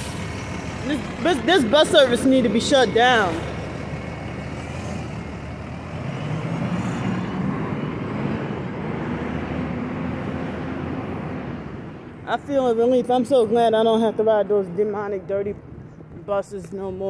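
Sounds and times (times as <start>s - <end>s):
bus engine droning: 0.0s - 17.0s
road noise: 0.0s - 17.0s.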